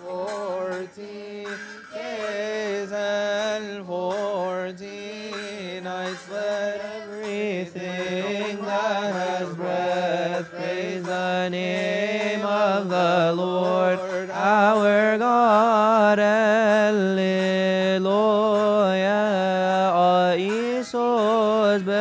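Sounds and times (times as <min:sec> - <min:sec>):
hymn chanted in unison: 0:00.0 - 0:22.0.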